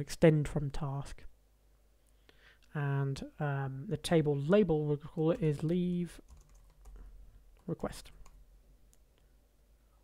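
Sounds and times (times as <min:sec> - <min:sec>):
faint keyboard clicks: 0:05.1 - 0:09.3.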